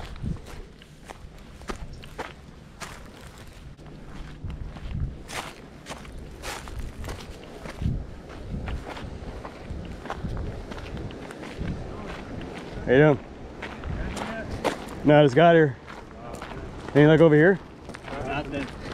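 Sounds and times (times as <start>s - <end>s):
footsteps on gravel: 0.0s - 18.9s.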